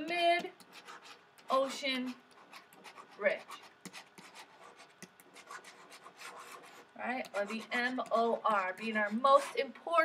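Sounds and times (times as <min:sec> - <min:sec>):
stylus scratching on a tablet: 0:00.0 - 0:10.0.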